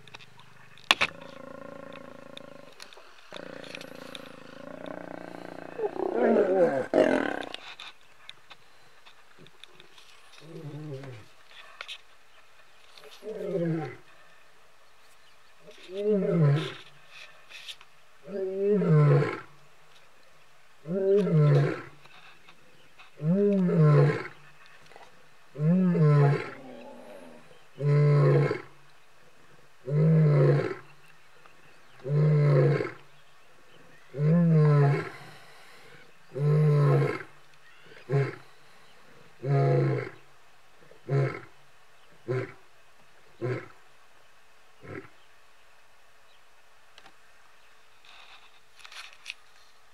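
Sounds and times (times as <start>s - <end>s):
lion roaring: 1.1s - 7.6s.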